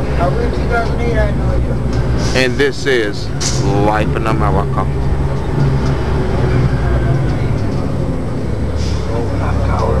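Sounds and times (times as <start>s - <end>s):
bus engine droning: 0.0s - 10.0s
faint passenger voices: 6.3s - 10.0s.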